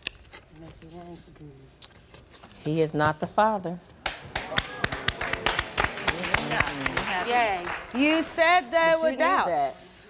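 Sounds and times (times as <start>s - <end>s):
hands clapping: 4.0s - 8.4s.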